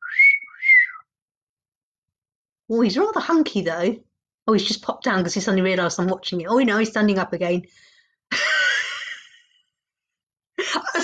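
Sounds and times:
person wolf whistling: 0:00.0 - 0:01.1.

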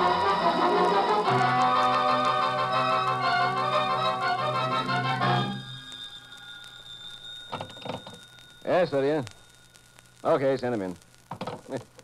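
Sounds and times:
organ chords: 0:00.0 - 0:06.2.

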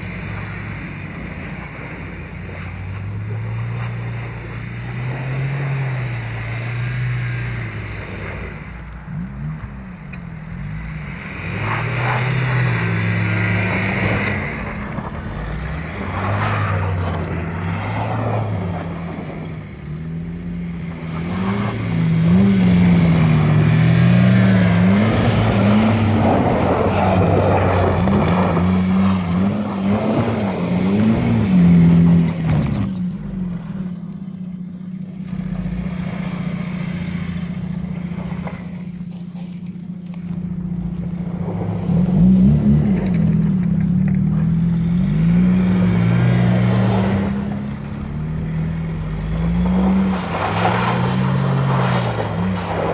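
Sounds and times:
diesel van engine revving: 0:00.0 - 0:52.9.

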